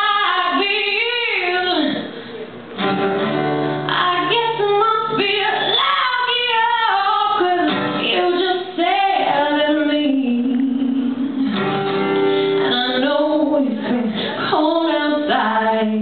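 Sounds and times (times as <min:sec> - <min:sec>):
woman singing: 0:00.0 - 0:02.1, 0:03.9 - 0:11.6, 0:12.6 - 0:16.0
acoustic guitar: 0:00.0 - 0:16.0.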